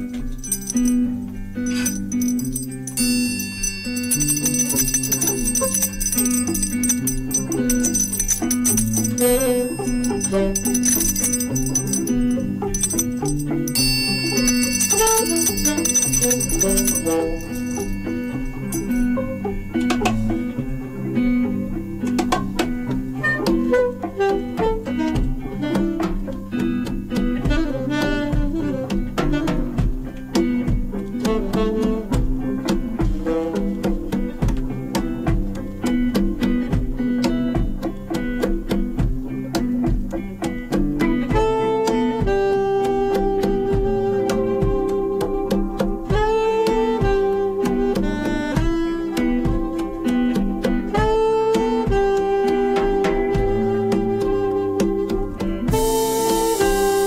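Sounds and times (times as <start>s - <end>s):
electric guitar notes: 0.0s - 57.0s
light percussion: 0.0s - 57.0s
live instrumental band music: 0.0s - 57.0s
saxophone long note: 50.9s - 54.8s, 55.7s - 57.0s.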